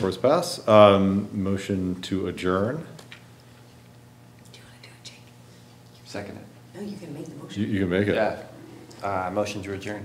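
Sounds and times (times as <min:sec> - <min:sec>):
steady low hum: 0:00.0 - 0:10.0
faint whispering: 0:04.5 - 0:05.4.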